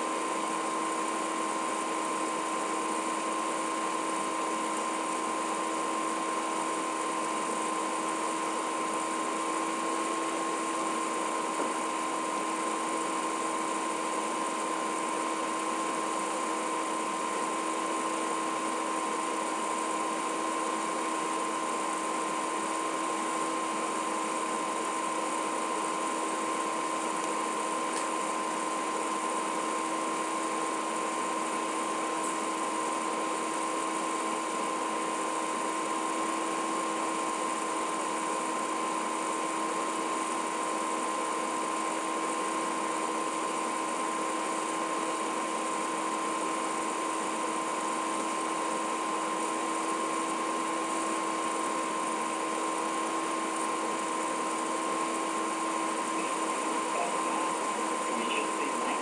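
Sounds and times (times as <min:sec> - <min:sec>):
high whine: 0:54.6 - 0:59.0
broadcast line hiss: 0:56.0 - 0:59.0.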